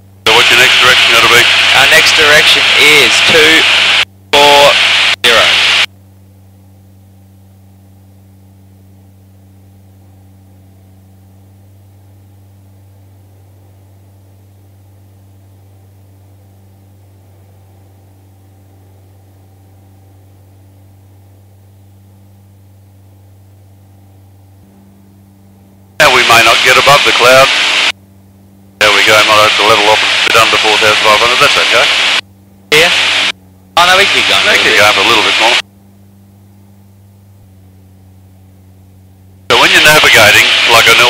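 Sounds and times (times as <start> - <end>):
light aircraft engine drone: 0.0 - 41.0.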